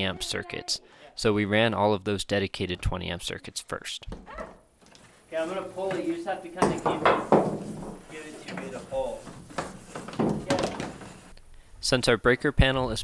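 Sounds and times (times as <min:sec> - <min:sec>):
sharp knocks: 0:05.9 - 0:08.1.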